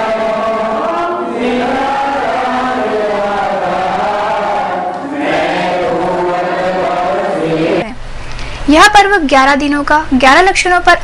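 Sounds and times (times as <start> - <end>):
voices chanting a hymn: 0.0 - 8.0.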